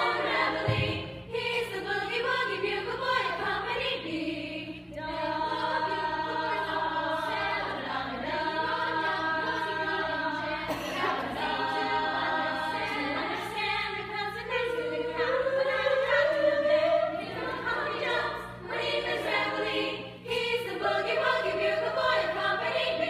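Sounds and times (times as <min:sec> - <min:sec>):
women's choir singing in harmony: 0:00.0 - 0:23.0.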